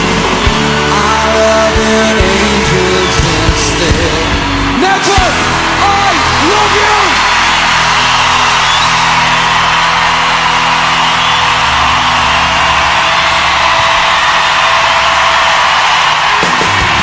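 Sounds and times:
concert crowd noise: 0.0 - 17.0
live rock band chords: 0.0 - 17.0.

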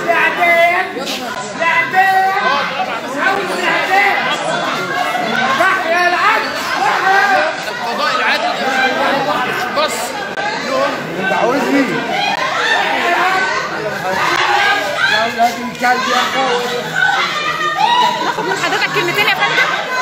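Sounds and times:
crowd talking and shouting: 0.0 - 20.0
people crying: 0.0 - 20.0.

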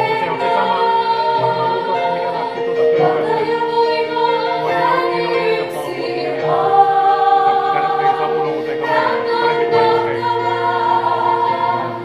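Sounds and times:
women singing through microphones: 0.0 - 12.0.

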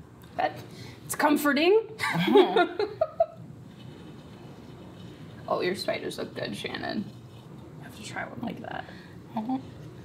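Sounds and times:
woman laughing: 2.0 - 3.4.

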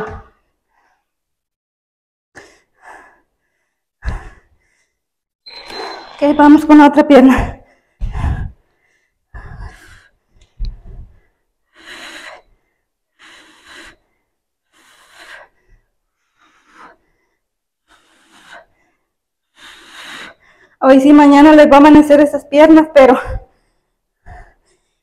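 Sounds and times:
woman breathing hard: 2.4 - 5.1, 7.2 - 20.8.

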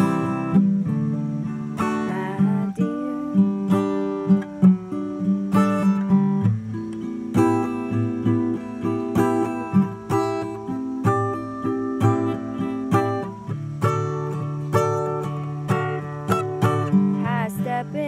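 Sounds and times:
acoustic guitar strumming chords: 0.0 - 18.0.

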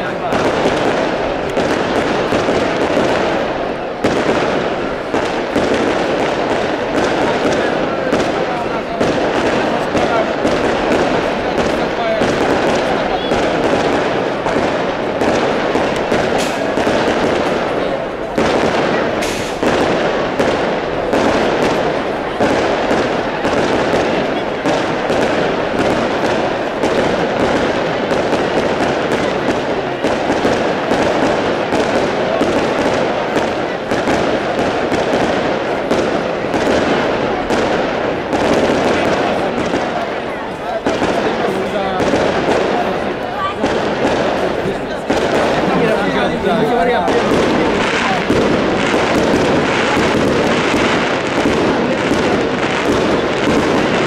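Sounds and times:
fireworks crackling: 0.0 - 54.0
sharp firework bangs: 0.0 - 54.0.

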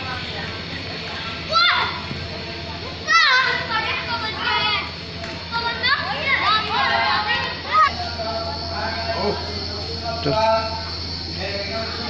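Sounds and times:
children calling and shrieking: 1.0 - 9.7.

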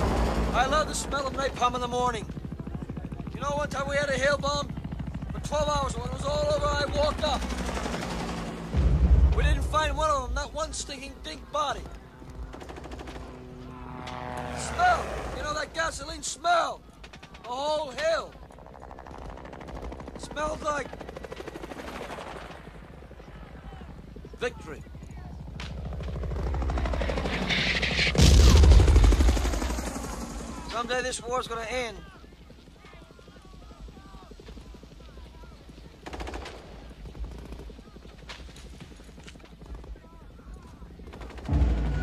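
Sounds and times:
distant gunfire crackle: 25.5 - 30.6, 35.5 - 39.9
distant machine-gun fire: 25.8 - 30.7, 36.0 - 39.5, 41.0 - 42.0.

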